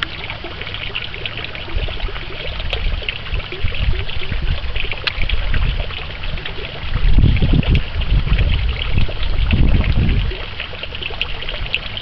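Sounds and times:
pond water trickling and splashing: 0.0s - 12.0s
wind gusts on microphone: 1.7s - 10.6s.

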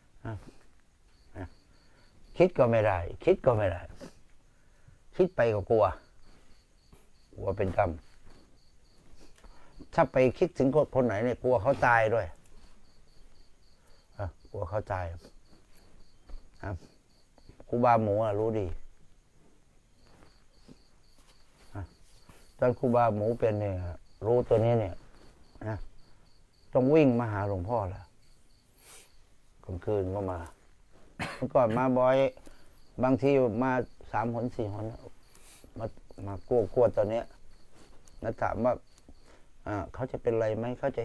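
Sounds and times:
crickets chirping: 0.0s - 41.0s
man talking: 0.2s - 0.6s, 2.3s - 4.1s, 5.1s - 6.0s, 7.4s - 8.0s, 9.9s - 12.4s, 14.1s - 15.3s, 16.6s - 16.9s, 17.7s - 18.8s, 21.7s - 22.0s, 22.6s - 25.0s, 25.6s - 25.9s, 26.7s - 28.1s, 29.6s - 30.6s, 31.4s - 32.4s, 33.0s - 35.1s, 35.8s - 37.3s, 38.2s - 38.8s, 39.6s - 41.0s.

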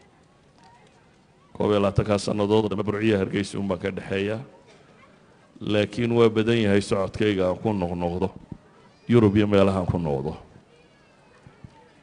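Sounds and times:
man speaking into a microphone: 1.6s - 4.5s, 5.6s - 8.4s, 9.1s - 10.5s.

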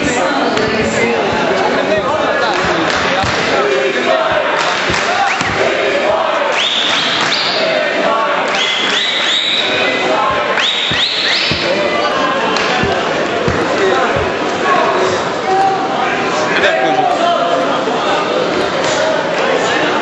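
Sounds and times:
people shouting in a hall: 0.0s - 20.0s.

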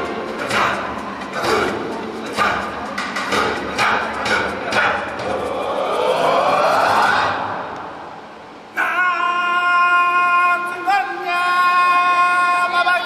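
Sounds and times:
music over outdoor loudspeakers: 0.0s - 8.6s.

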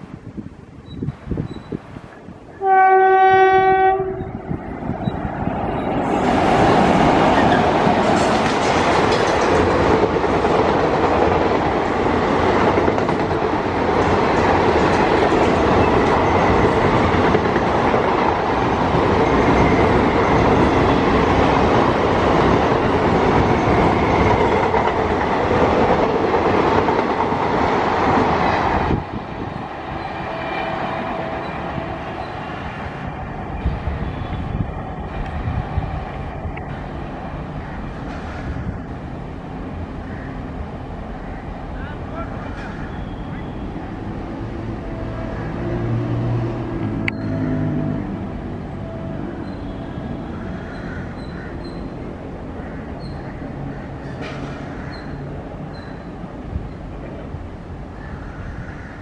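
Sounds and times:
train wheels rumbling on rails: 0.0s - 59.0s
train horn blast: 2.6s - 4.6s, 47.2s - 50.4s.

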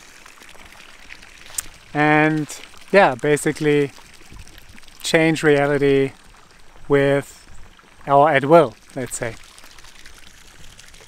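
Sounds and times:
outdoor background hiss: 0.9s - 10.5s.

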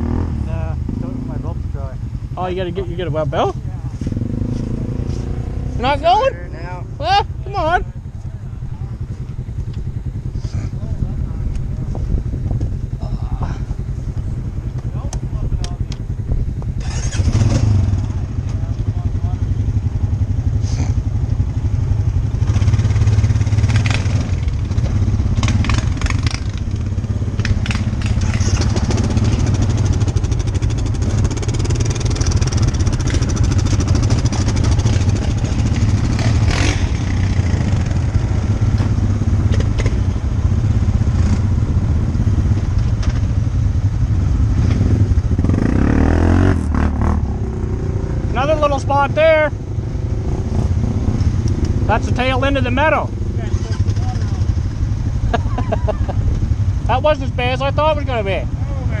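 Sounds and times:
quad bike engine running: 0.0s - 59.0s
knocks and clatter over ground: 23.6s - 37.1s, 38.7s - 40.2s, 42.5s - 43.4s.

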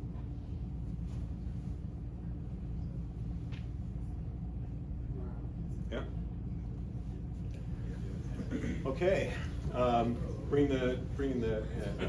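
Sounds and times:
faint steady hum: 0.0s - 12.0s
low room rumble: 0.0s - 12.0s.

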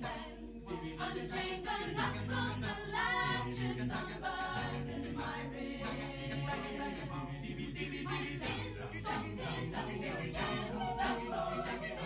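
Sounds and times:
a cappella choir singing: 0.0s - 12.0s.

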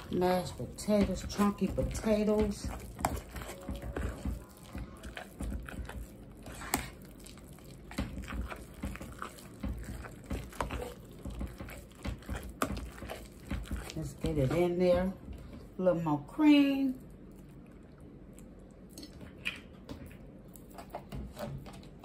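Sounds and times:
potato masher squelching: 0.0s - 15.9s.

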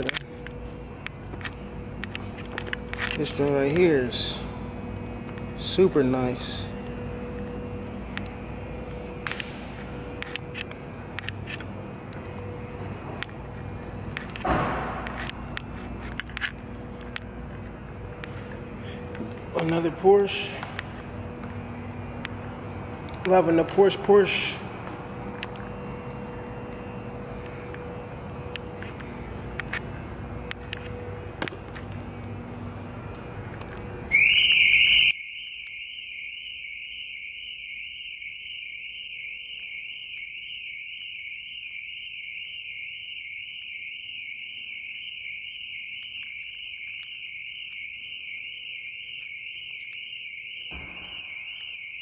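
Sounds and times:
car alarm blast: 1.7s - 33.1s, 33.8s - 52.0s
car alarm warbling tone: 34.0s - 52.0s.

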